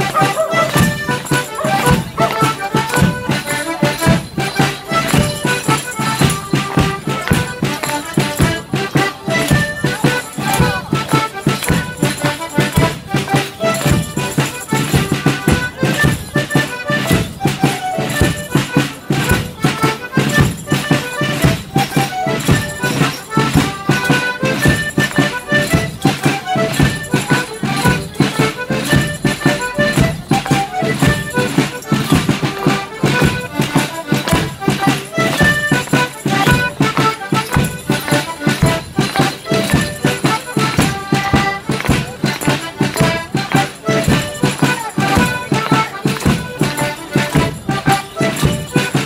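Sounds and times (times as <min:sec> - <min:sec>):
lively folk dance melody: 0:00.0 - 0:49.0
steady percussive beat: 0:00.0 - 0:49.0.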